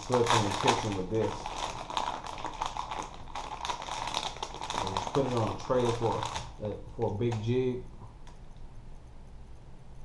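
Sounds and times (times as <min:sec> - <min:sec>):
plastic package crinkling: 0:00.0 - 0:07.6.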